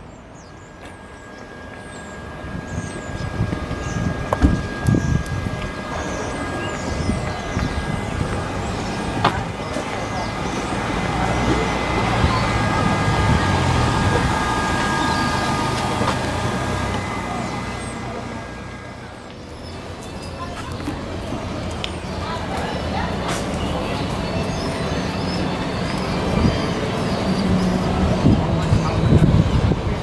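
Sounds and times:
lorry engine running: 0.0s - 30.0s
street traffic: 0.0s - 30.0s.

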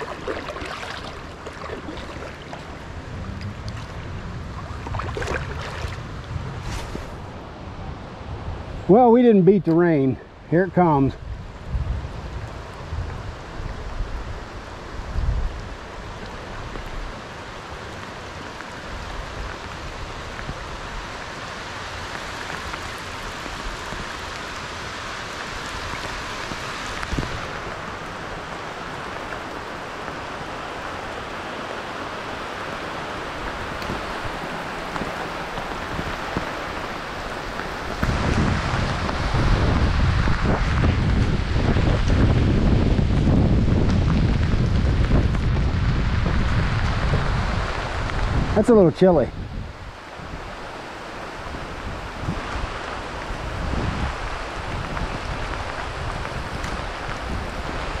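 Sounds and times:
rain falling on river: 0.0s - 58.0s
wind blowing across microphone: 0.0s - 58.0s.

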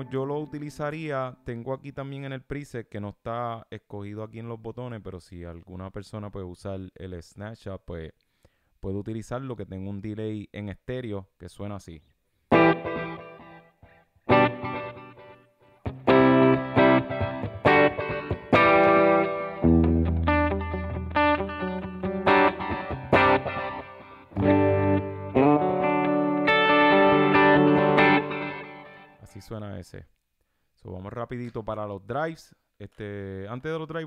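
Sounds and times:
electric guitar with delay: 12.5s - 13.7s, 14.3s - 29.2s.

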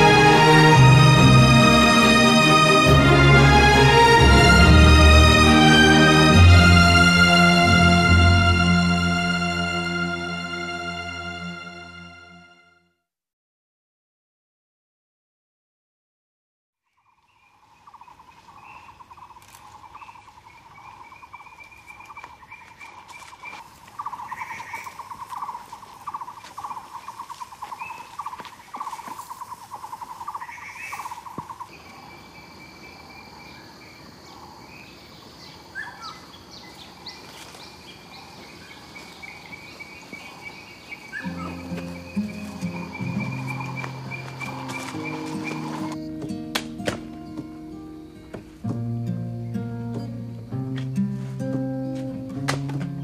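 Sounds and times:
low sustained music: 0.0s - 12.7s, 40.8s - 53.0s
birds chirping: 16.9s - 53.0s
high insect drone: 17.9s - 52.9s.

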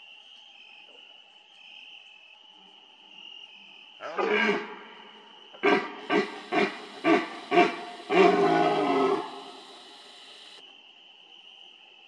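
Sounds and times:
faint insect chirr: 0.0s - 12.0s
deer stag roaring: 5.6s - 10.6s.

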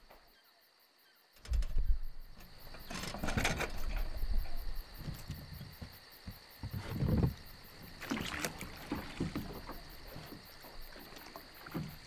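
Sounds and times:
crickets chirping: 0.0s - 12.0s
high insect trill: 0.0s - 12.0s.

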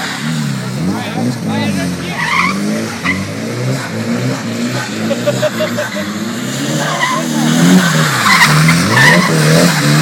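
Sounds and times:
car engine revving: 0.0s - 10.0s
tyres skidding: 0.0s - 10.0s.

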